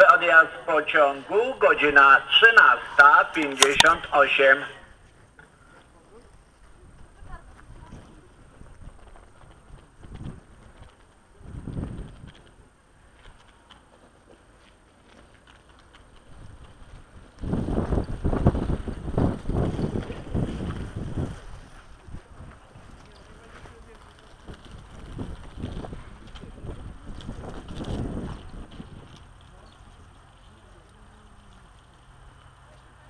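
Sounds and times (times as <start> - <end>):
wind buffeting microphone: 6.4 - 13.5, 15.8 - 30.1.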